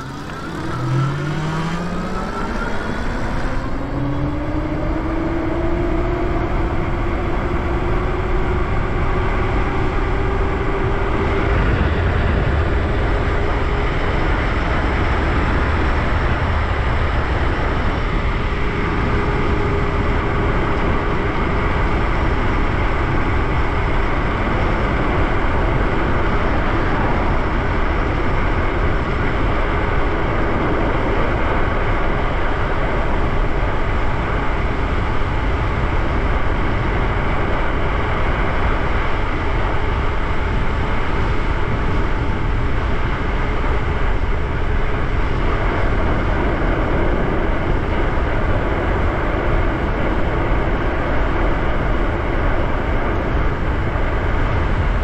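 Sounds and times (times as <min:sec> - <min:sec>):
electric motor whine: 0:00.0 - 0:05.7
wind rush on microphone: 0:00.0 - 0:55.0.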